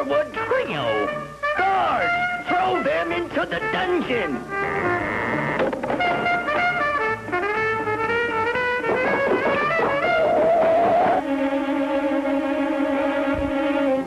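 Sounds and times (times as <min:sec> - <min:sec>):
jazz music with trumpet melody: 0:00.0 - 0:14.0.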